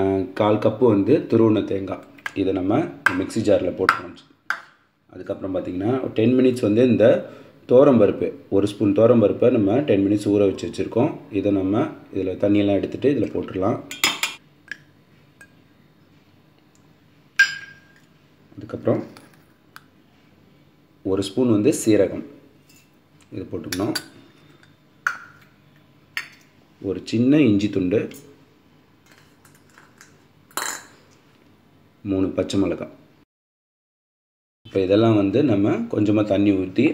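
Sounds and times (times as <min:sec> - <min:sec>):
kitchenware clattering: 0:13.9 - 0:14.4, 0:17.4 - 0:18.1, 0:29.0 - 0:31.1
steel clink ringing: 0:17.4 - 0:18.0.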